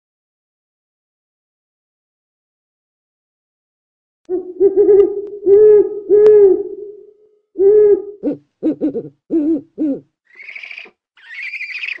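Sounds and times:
raspy owl calls: 0:07.6 - 0:12.0.

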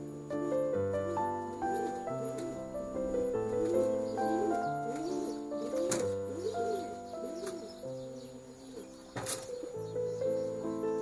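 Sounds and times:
pigeon cooing: 0:00.0 - 0:10.8
background music: 0:00.0 - 0:11.0.

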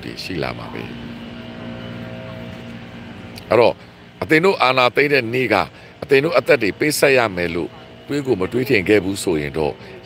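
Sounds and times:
engine drone: 0:00.0 - 0:10.0.

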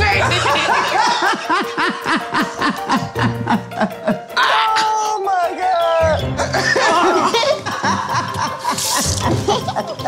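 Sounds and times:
background music: 0:00.0 - 0:10.0
person laughing hard: 0:00.2 - 0:04.5, 0:06.4 - 0:10.0.

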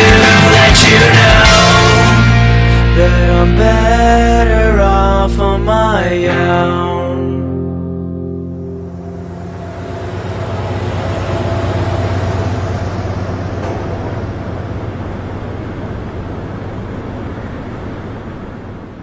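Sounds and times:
truck engine and road rumble: 0:08.2 - 0:19.0.

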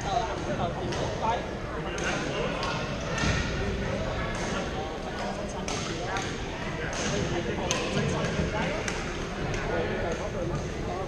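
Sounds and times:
people chattering in echoing gym: 0:00.0 - 0:11.0.

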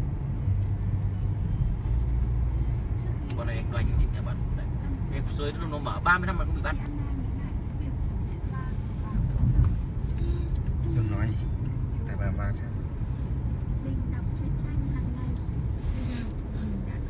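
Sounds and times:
car road and engine rumble: 0:00.0 - 0:17.0.

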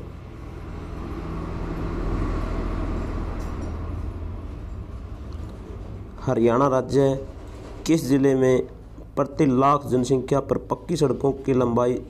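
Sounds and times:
vehicle passing rumble: 0:00.0 - 0:10.3
low background hum: 0:00.0 - 0:12.0.

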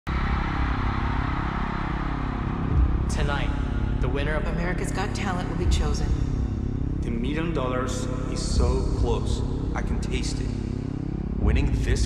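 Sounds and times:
low rumble with drone tones: 0:00.1 - 0:12.0.

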